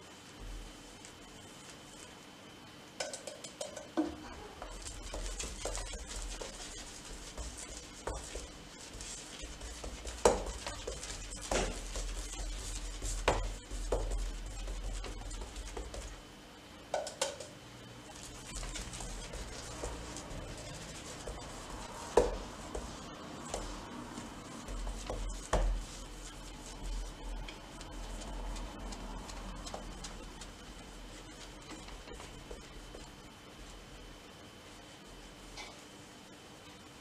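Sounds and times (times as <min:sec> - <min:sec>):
paintbrush strokes hissing: 0:04.6 - 0:16.2, 0:18.0 - 0:33.8.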